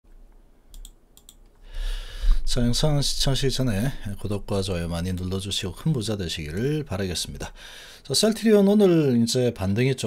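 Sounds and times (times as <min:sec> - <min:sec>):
computer mouse double-clicks: 0:00.7 - 0:01.5.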